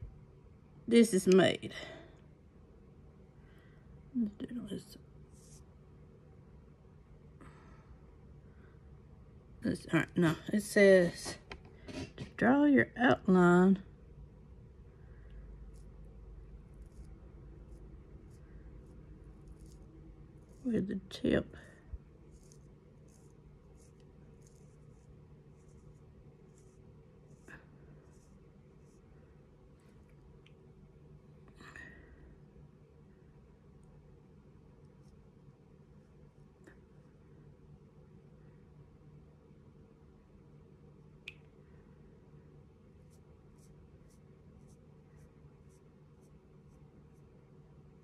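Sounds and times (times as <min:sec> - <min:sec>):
faint steady hum: 0:00.0 - 0:48.0
pen tip scratching on skin: 0:15.7 - 0:21.1, 0:22.2 - 0:29.1.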